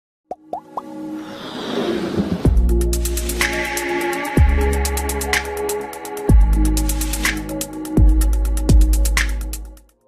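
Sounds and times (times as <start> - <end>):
short upward blip plops: 0.3 - 0.9.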